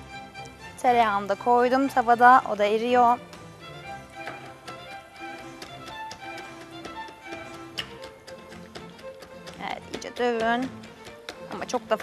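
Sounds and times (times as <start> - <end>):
soft background music: 0.0 - 12.0
pestle tapping in mortar: 4.2 - 12.0.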